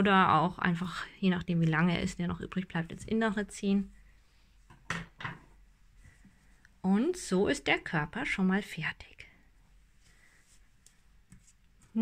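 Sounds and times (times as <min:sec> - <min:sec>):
soft handling sound: 0:09.6 - 0:12.0.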